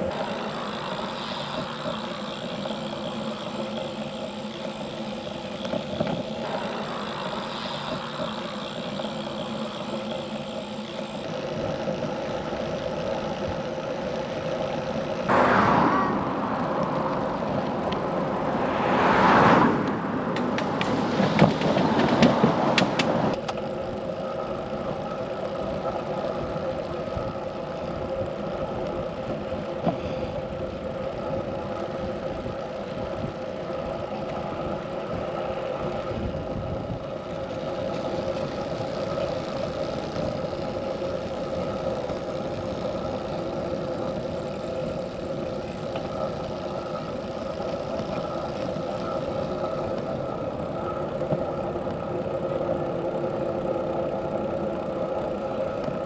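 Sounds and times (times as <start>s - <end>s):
bicycle tyres and drivetrain hum: 0.0s - 56.0s.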